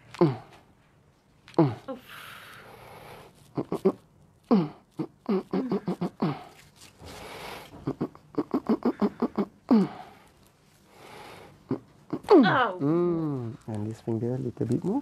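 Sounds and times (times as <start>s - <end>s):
breaths: 1.9s - 3.4s, 6.2s - 7.8s, 9.7s - 11.7s
person laughing or groaning: 3.6s - 6.5s, 7.8s - 10.0s.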